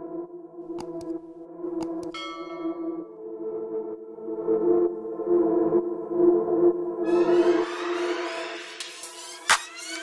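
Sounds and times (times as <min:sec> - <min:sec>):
ambient background music: 0:00.0 - 0:10.0
bell chime: 0:02.2 - 0:03.1.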